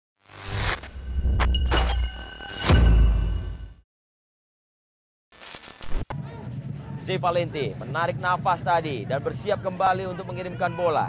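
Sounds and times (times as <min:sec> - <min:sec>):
sharp glitch hits: 0:00.2 - 0:03.8.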